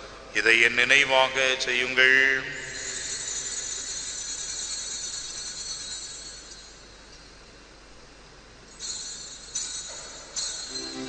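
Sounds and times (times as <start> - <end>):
small bells jingling: 2.6 - 7.1, 8.7 - 11.0.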